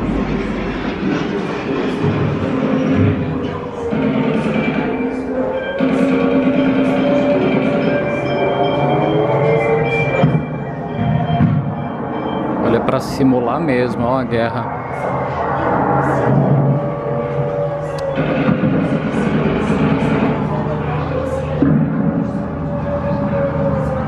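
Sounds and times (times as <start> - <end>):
music: 0.0 - 12.6
train noise: 0.0 - 24.0
voices: 1.8 - 24.0.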